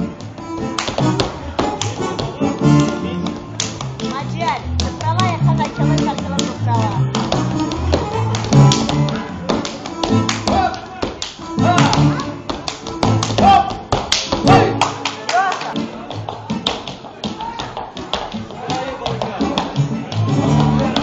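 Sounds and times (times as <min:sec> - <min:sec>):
keyboard music: 0:00.0 - 0:15.0
hand slaps on legs and shoes: 0:07.2 - 0:20.3.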